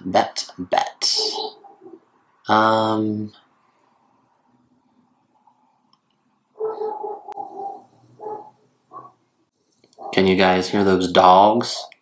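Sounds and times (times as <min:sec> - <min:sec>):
dogs calling: 0:01.2 - 0:02.1, 0:06.6 - 0:09.2, 0:10.0 - 0:10.3.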